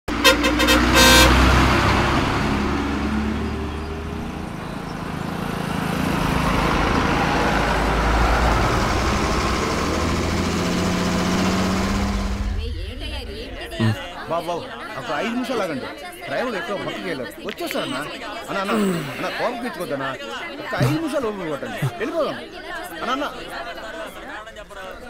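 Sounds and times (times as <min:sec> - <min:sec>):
vehicle horn toots: 0:00.1 - 0:02.0
bus engine running: 0:00.1 - 0:14.2.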